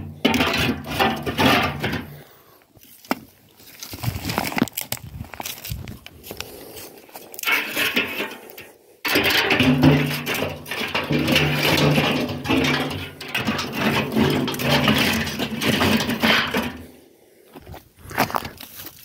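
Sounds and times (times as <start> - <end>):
sticks rattling in metal drum: 0.0 - 2.2, 7.4 - 16.9.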